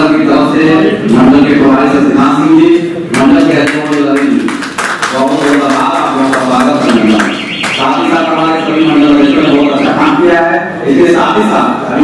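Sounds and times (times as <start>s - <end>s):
man talking through a microphone: 0.0s - 12.0s
high warbling electronic tone: 6.8s - 10.6s.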